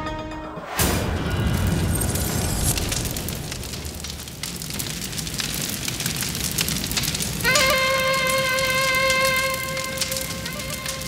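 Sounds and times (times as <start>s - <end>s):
low rumble: 0.7s - 7.2s
fire crackling: 0.7s - 11.0s.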